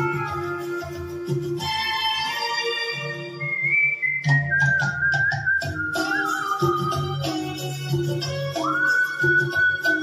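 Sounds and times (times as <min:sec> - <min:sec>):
karaoke backing track: 0:00.0 - 0:10.0
man whistling a melody: 0:03.2 - 0:10.0.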